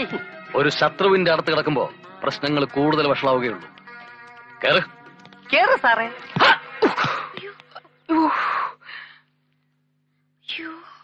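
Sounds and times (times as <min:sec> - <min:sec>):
film music of held notes: 0:00.0 - 0:08.2
man speaking: 0:04.6 - 0:04.9.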